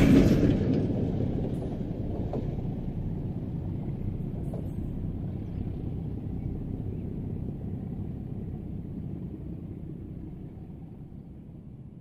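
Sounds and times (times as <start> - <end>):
diesel locomotives rumbling: 0.0 - 12.0.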